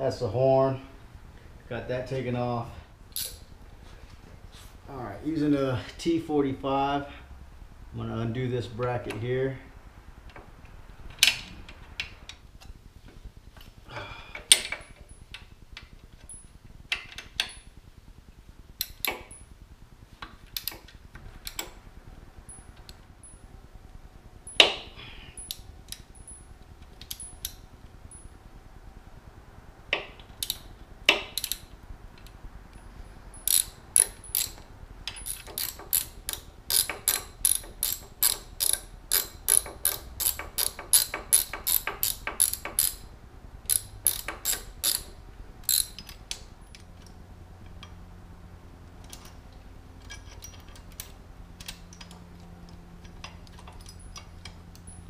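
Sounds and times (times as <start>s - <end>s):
socket ratchet clicking: 3.2s - 3.4s, 29.9s - 31.7s, 33.4s - 43.1s, 43.7s - 46.9s.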